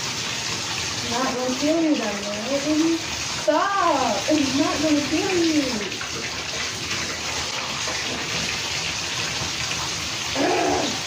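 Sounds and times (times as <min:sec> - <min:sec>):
tap water running into bathtub: 0:00.0 - 0:11.0.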